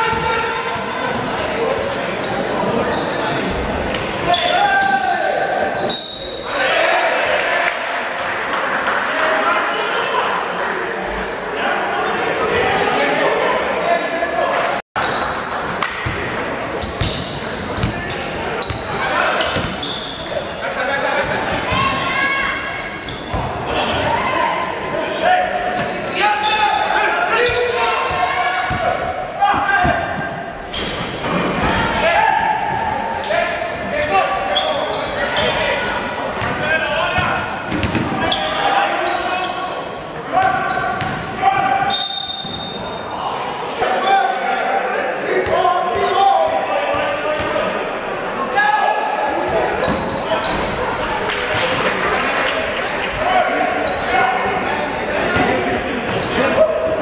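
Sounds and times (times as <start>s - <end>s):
players and spectators calling: 0.0s - 57.0s
basketball bouncing on wooden court: 16.0s - 18.0s, 37.2s - 38.1s, 40.4s - 41.3s.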